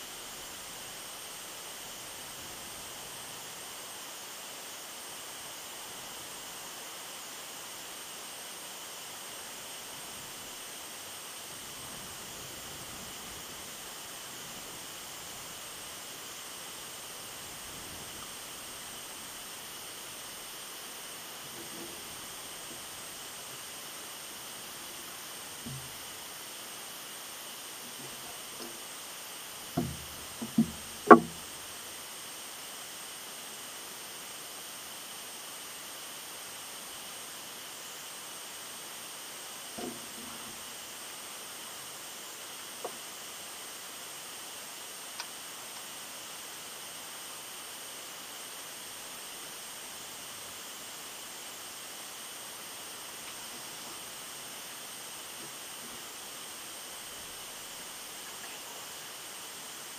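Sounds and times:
steady hiss: 0:00.0 - 0:59.9
knocks close to microphone: 0:29.8 - 0:31.4.

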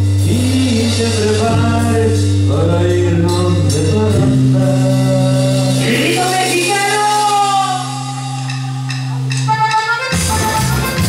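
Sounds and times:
latin dance band playing: 0:00.0 - 0:11.0.

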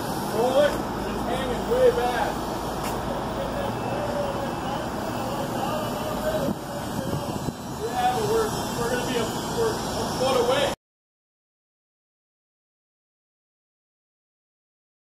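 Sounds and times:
construction site noise: 0:00.0 - 0:10.8
traffic noise: 0:00.0 - 0:10.8
workers talking: 0:00.0 - 0:10.8.

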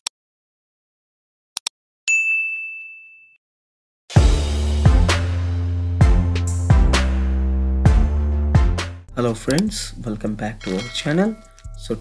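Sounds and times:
bright bell ding: 0:02.1 - 0:03.4, 0:10.6 - 0:12.0.

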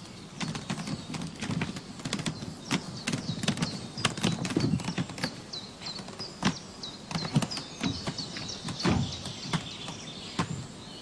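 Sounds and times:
small birds chirping: 0:00.0 - 0:11.0
wooden boxes knocking and clattering: 0:00.4 - 0:10.8.

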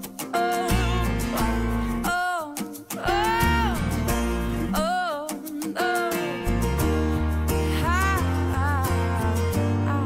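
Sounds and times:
guitar bass and drums: 0:00.0 - 0:02.1, 0:03.1 - 0:04.8, 0:06.4 - 0:10.0
person singing pop song: 0:00.0 - 0:10.0.

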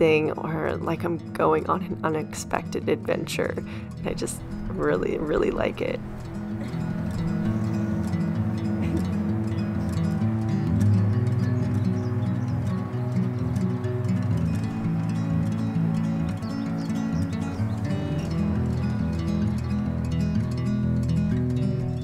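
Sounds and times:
gentle plucked string music: 0:00.0 - 0:22.0.

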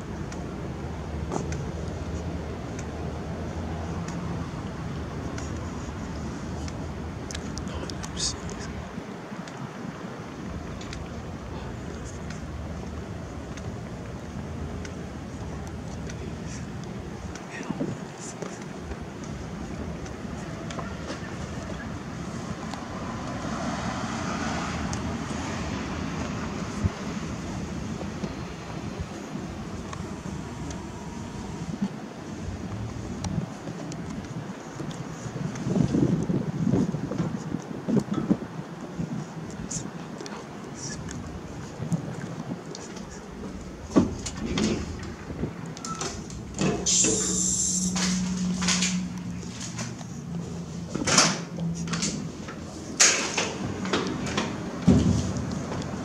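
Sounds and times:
street traffic noise: 0:00.0 - 0:56.0
wind buffeting microphone: 0:00.0 - 0:56.0
vehicle passing: 0:19.8 - 0:31.8, 0:42.9 - 0:56.0.

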